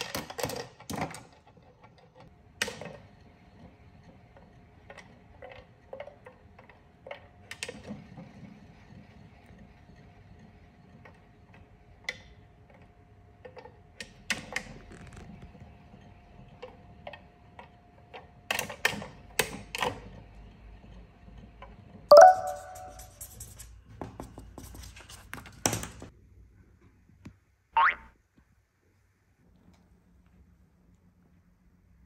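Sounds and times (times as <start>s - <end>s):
plastic toy clicking and knocking: 0.0s - 2.9s.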